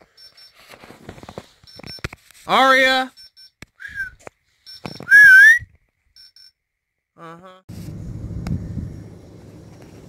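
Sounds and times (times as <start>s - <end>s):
person whistling: 3.8s - 4.2s, 5.0s - 5.7s.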